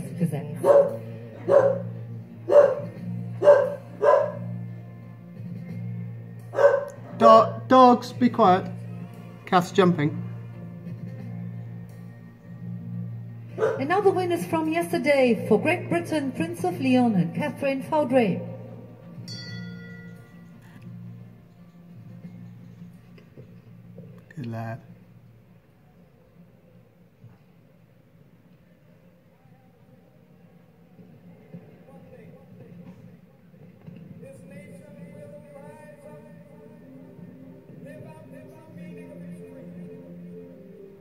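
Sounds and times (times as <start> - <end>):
background music: 0.0 - 41.0
bell ringing through tv speaker: 19.3 - 20.8.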